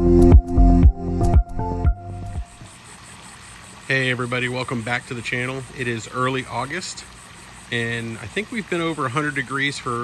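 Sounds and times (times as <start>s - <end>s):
electronic intro music: 0.0s - 2.7s
fountain water splashing into pool: 2.4s - 10.0s.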